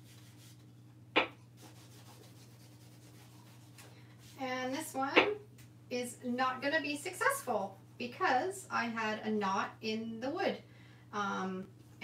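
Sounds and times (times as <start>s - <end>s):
fingertips rubbing paper: 0.0s - 0.6s, 1.6s - 4.4s.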